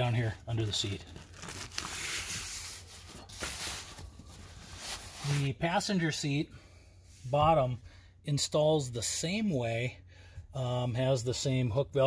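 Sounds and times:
fabric rustling: 0.8 - 5.5
velcro strap ripping: 0.9 - 2.5.

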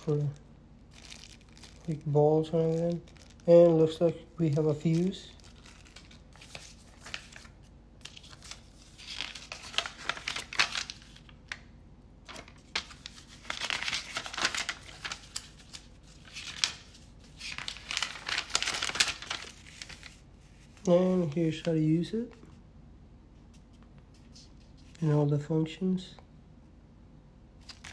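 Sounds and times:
paper rustling and crinkling: 0.0 - 11.6, 12.2 - 22.6, 27.6 - 27.9.

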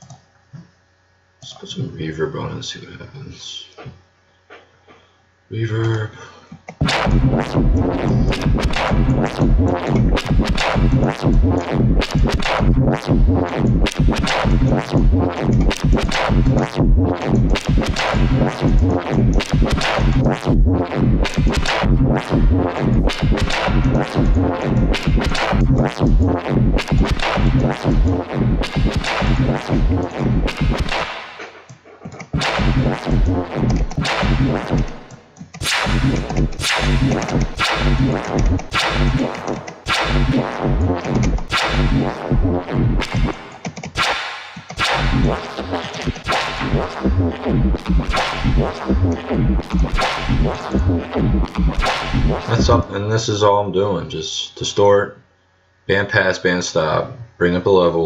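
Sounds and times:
distorted synth bass stabs: 6.8 - 31.4, 32.3 - 52.9.

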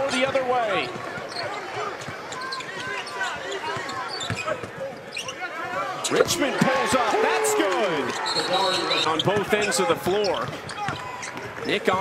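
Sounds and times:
shoe squeaks: 1.2 - 1.6, 2.3 - 5.5, 8.1 - 11.8.

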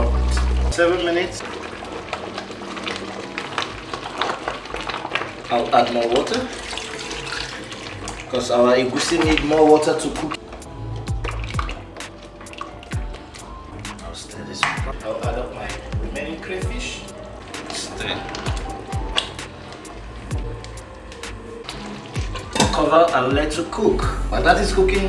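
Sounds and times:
background music: 0.0 - 25.0
spatula stirring thick soup: 0.4 - 14.0, 14.6 - 23.7.

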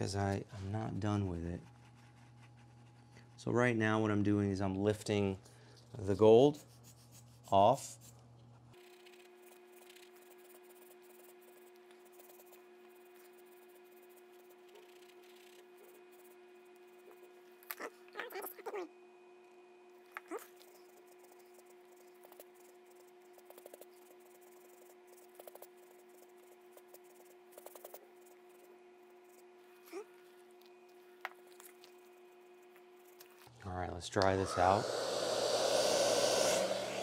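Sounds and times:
faint steady hum: 0.0 - 37.0.

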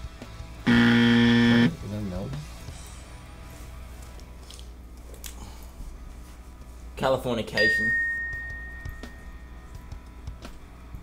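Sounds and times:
game show buzzer: 0.7 - 1.8.

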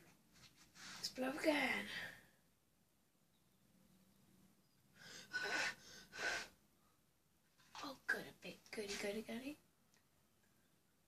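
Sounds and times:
breathy puffs of breath: 5.0 - 6.6.

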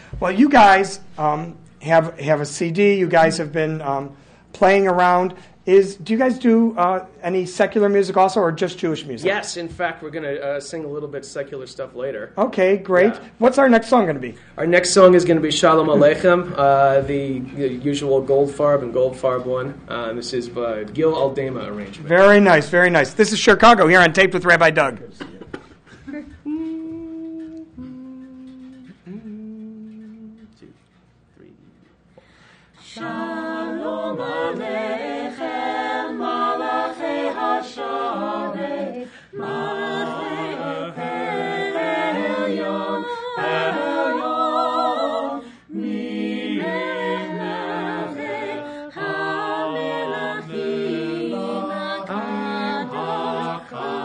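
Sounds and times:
a cappella group singing: 25.8 - 30.9, 32.2 - 54.0
person humming held notes: 26.1 - 30.8.

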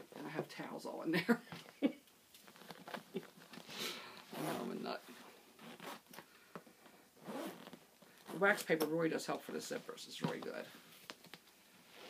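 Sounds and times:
zipper sliding: 2.5 - 4.9, 5.6 - 6.2, 7.2 - 8.6
zipper clicks: 7.2 - 8.4.

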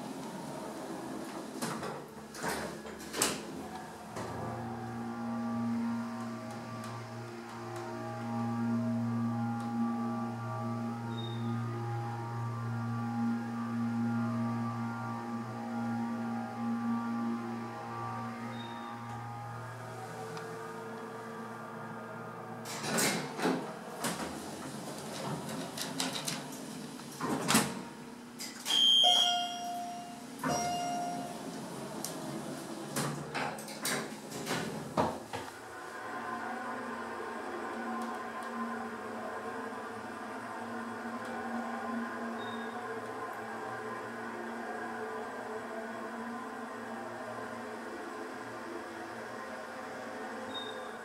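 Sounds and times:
elevator door shutting: 0.0 - 36.3, 39.6 - 43.6, 50.5 - 51.0
elevator chime tones: 4.6 - 20.2, 28.7 - 31.6, 50.5 - 51.0.

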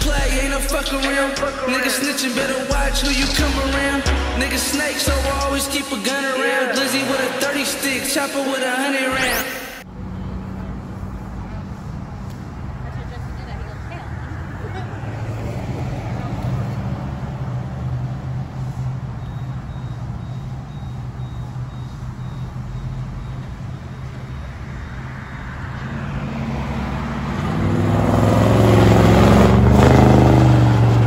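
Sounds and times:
car passing close: 9.8 - 31.0
low engine hum: 9.8 - 31.0.

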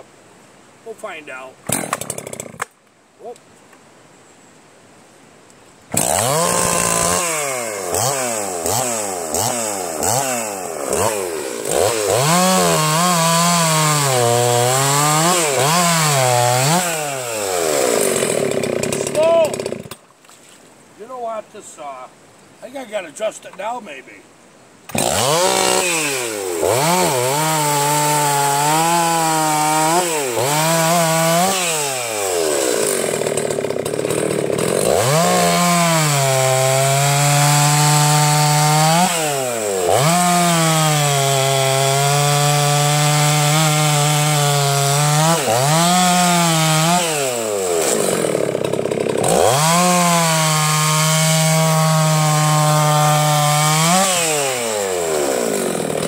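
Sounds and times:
chainsaw cutting logs: 1.6 - 2.8, 5.9 - 20.1, 24.9 - 56.0.

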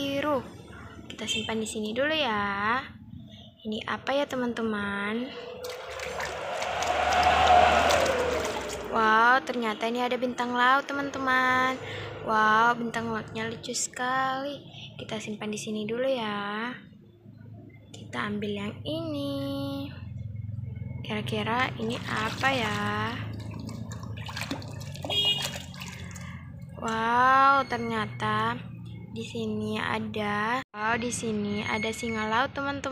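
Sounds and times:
hand scrubbing toy underwater: 5.4 - 9.2, 21.8 - 27.0
water sloshing in a plastic bucket: 5.6 - 6.4, 21.8 - 27.1.

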